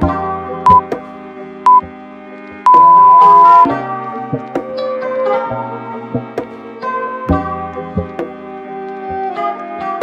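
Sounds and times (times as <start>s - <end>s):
timer beeps: 0.7s - 0.9s, 1.7s - 1.9s, 2.7s - 3.7s.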